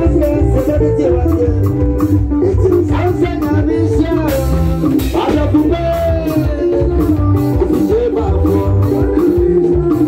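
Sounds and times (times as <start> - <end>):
bass guitar: 0.0 - 10.0
drum kit: 0.0 - 10.0
electric guitar: 0.0 - 10.0
man singing into microphone: 0.0 - 10.0.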